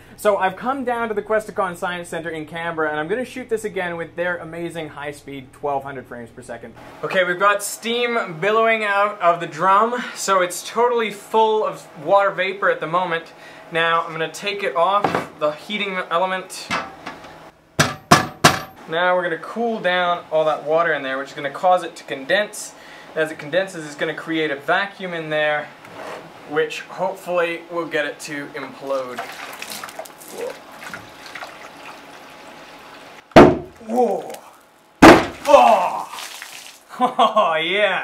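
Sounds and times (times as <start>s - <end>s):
man exclaiming: 30.3s - 30.6s, 33.8s - 34.6s, 35.4s - 36.2s, 37.3s - 38.0s
metal drum imploding with bang: 33.4s - 33.8s, 35.0s - 35.4s.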